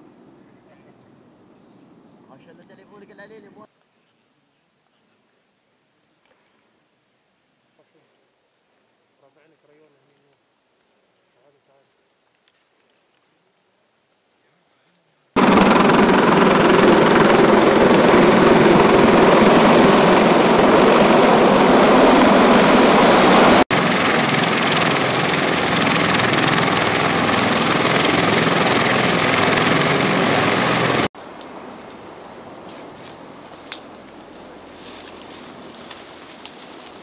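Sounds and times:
helicopter rotor and turbines roaring: 15.4 - 31.1.

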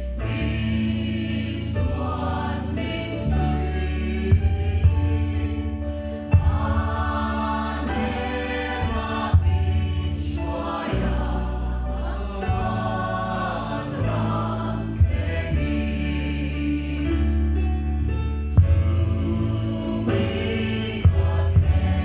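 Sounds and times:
choir singing a gospel hymn: 0.0 - 22.0
drum and cymbal hits: 4.3 - 11.2, 18.6 - 22.0.

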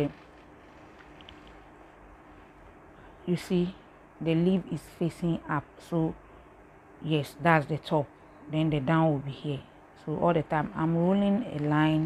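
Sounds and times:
cotton fabric rustling: 0.0 - 2.8
steady low hum: 0.0 - 12.0.

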